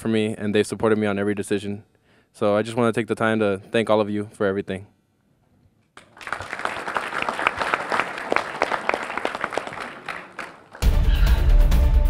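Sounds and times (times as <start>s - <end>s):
audience clapping: 6.0s - 11.2s
theme music with heavy bass: 10.8s - 12.0s.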